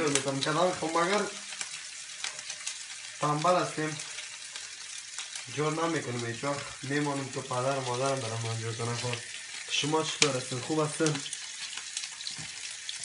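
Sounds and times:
food sizzling in a frying pan: 0.0 - 13.0.

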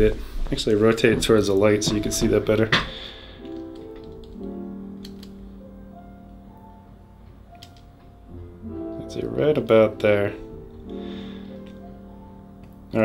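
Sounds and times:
slow piano notes: 0.0 - 13.0.

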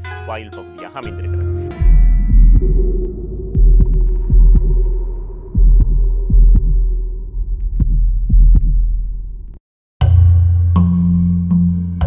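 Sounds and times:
deep heartbeat-like thumps: 1.7 - 9.6.

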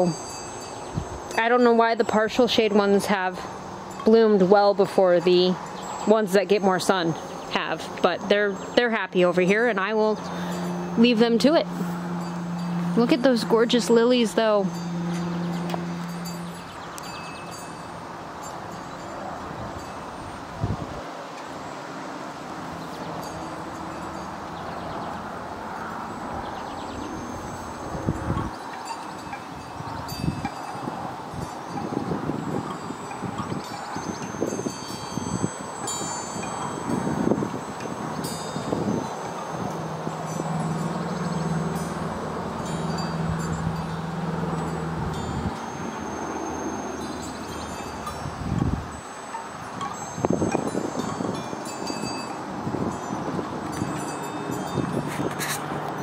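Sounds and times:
wind buffeting microphone: 0.0 - 21.2, 22.6 - 56.0
wind chimes ringing: 0.0 - 56.0.

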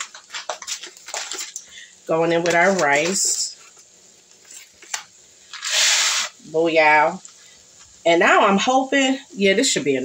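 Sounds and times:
rice grains hitting a pan: 0.0 - 1.6.

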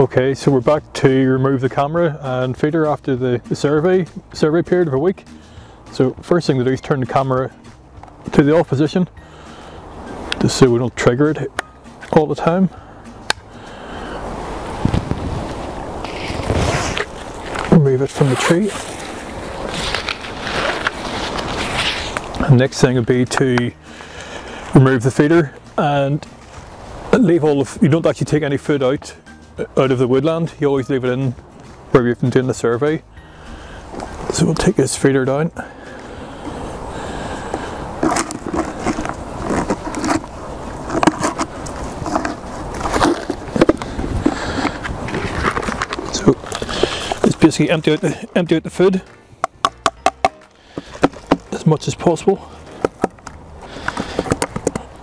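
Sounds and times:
wood scraping and creaking: 14.1 - 27.8, 35.8 - 55.0
webbing strap sliding through buckle: 14.2 - 22.5, 37.3 - 48.0, 52.6 - 55.0.

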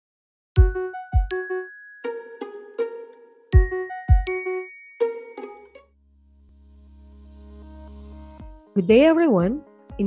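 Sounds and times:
chiming logo jingle: 0.6 - 5.9.

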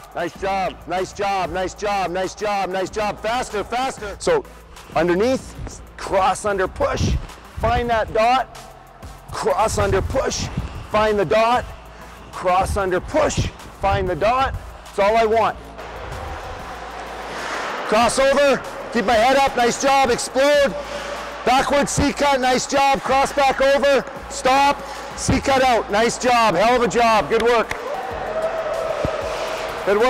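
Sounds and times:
skate blades scraping on ice: 15.8 - 22.2, 28.9 - 30.0
ice skate blades scraping ice: 16.3 - 18.8, 28.9 - 29.8.

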